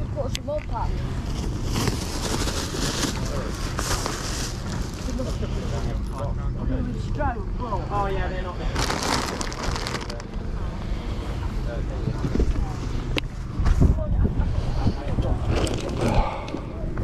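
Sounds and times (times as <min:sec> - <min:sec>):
toys rustling: 0:00.5 - 0:05.2
faint voices: 0:02.2 - 0:17.0.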